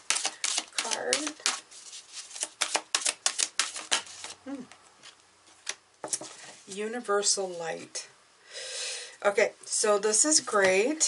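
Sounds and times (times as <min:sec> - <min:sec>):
cards being shuffled by hand: 0:00.0 - 0:04.4.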